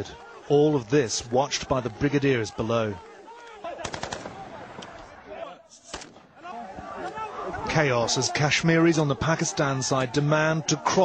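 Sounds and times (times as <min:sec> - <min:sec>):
crowd of men shouting: 0:00.0 - 0:11.0
rifle shots: 0:03.8 - 0:05.0, 0:05.9 - 0:06.4.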